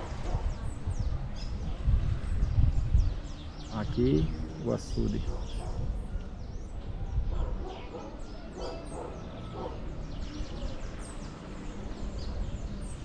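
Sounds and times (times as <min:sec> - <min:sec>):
wind rumbling on microphone: 0:00.0 - 0:13.0.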